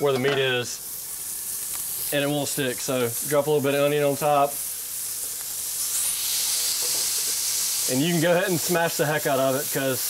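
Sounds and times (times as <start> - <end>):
meat sizzling on a griddle: 0.0 - 10.0.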